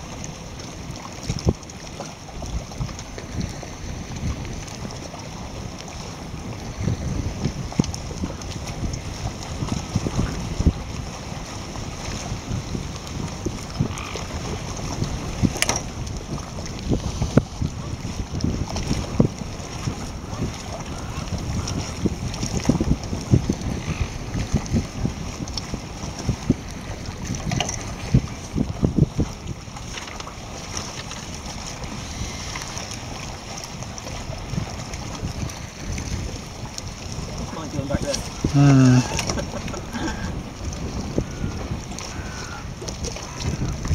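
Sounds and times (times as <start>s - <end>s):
wind noise on microphone: 0.0s - 43.9s.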